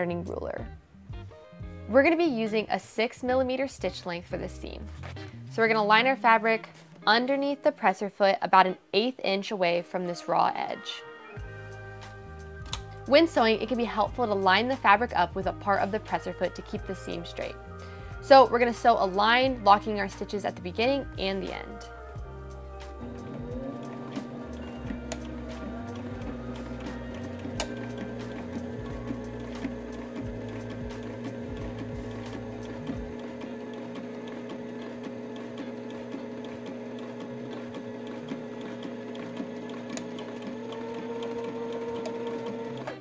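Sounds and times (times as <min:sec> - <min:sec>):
sewing machine stitching: 0:23.0 - 0:43.0.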